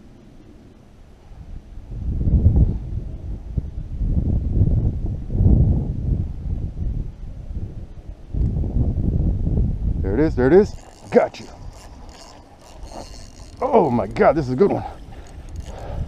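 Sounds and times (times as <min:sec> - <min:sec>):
wind buffeting microphone: 0:01.2 - 0:16.0.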